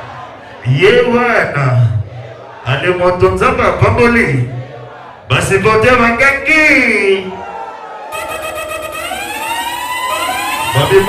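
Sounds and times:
man's voice: 0.6s - 4.6s, 5.3s - 7.4s, 10.6s - 11.0s
electronic siren-like sweep: 8.1s - 11.0s.

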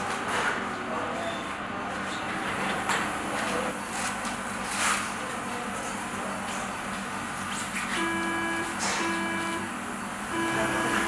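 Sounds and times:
equipment hum: 0.0s - 11.0s
monitor beeps: 8.0s - 9.7s, 10.3s - 11.0s.

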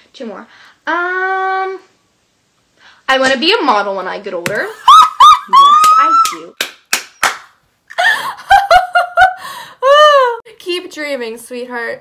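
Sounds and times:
woman laughing: 4.7s - 6.4s, 7.9s - 10.4s
hand claps: 5.7s - 7.6s.

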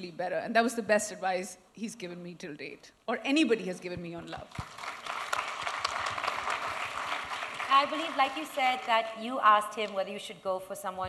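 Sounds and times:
audience applauding: 4.5s - 9.2s.

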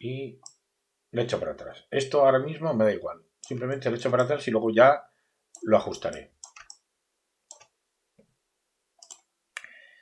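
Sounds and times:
computer mouse clicks: 5.6s - 6.8s, 7.5s - 7.7s, 9.0s - 9.3s.

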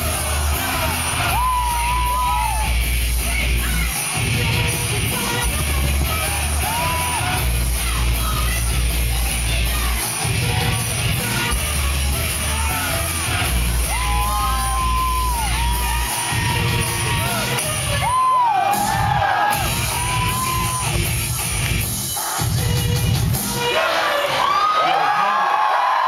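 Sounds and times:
crowd cheering and whooping: 0.0s - 4.0s, 4.8s - 7.9s, 12.0s - 21.1s, 23.6s - 26.0s
live noise-pop song: 0.0s - 25.6s.

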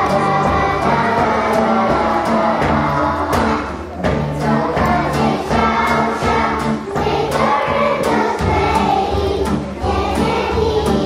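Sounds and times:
accompaniment with steady beat: 0.0s - 11.0s
group of voices singing: 0.0s - 11.0s.

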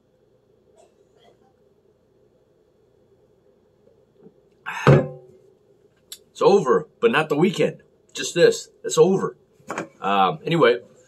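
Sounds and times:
glass mug thunk on table: 4.8s - 5.3s.

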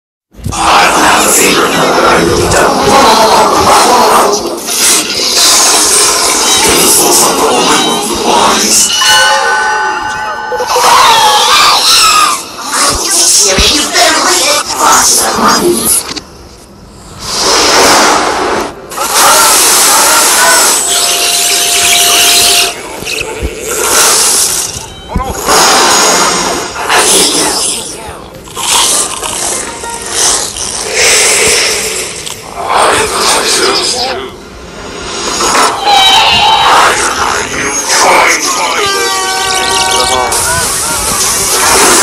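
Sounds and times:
jumble of overlapping soundtracks: 0.4s - 42.0s.

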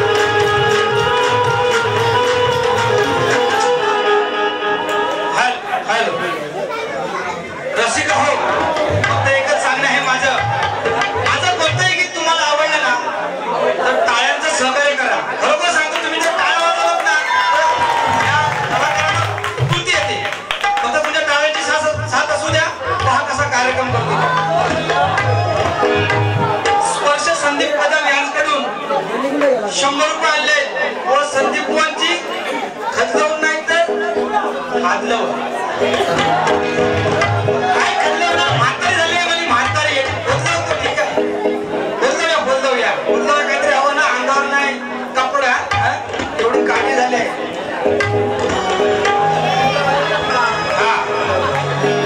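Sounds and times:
several voices talking: 4.9s - 17.2s, 18.2s - 52.0s.

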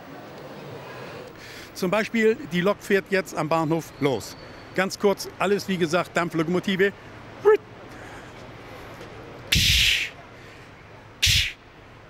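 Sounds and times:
man imitating steam locomotive chuff: 9.5s - 10.2s.

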